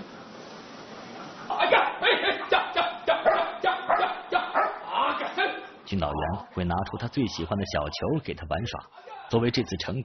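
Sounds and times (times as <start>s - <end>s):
dog barking: 3.1s - 4.9s.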